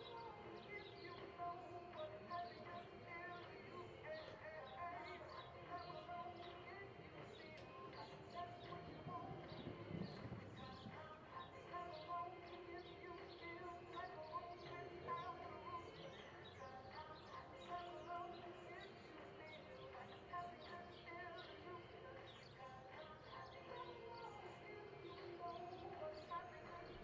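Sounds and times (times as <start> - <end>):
faint background music: 0.0 - 27.0
small birds chirping: 0.0 - 27.0.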